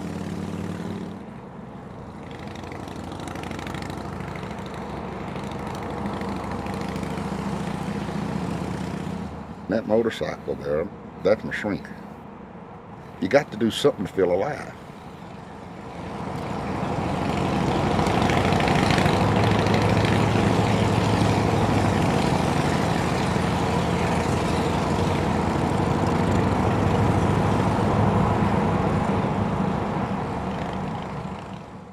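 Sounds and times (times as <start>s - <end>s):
motorcycle engine cruising: 0.0s - 9.7s, 15.0s - 31.9s.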